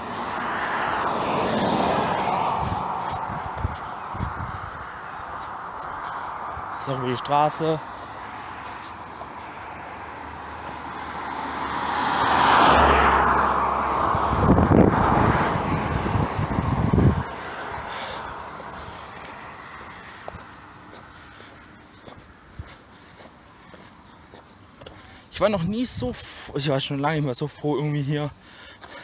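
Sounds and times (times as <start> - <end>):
wind buffeting microphone: 0.0 - 9.1, 12.2 - 19.4
car passing: 0.0 - 25.4.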